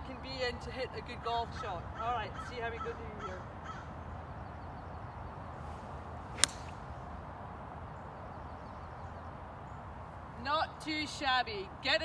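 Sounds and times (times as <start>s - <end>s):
golf club striking ball: 6.3s - 6.9s.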